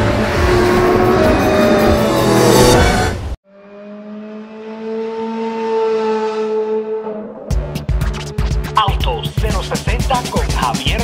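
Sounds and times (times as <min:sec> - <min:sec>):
car engine droning: 0:00.0 - 0:08.0.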